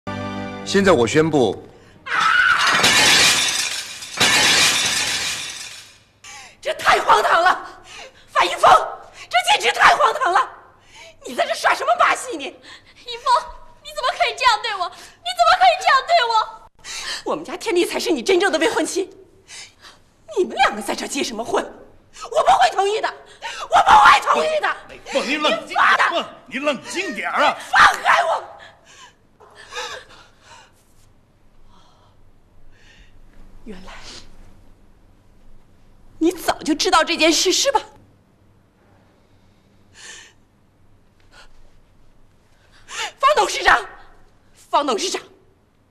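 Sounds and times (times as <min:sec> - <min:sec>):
glasses and dishes shattering: 0:02.6 - 0:06.0.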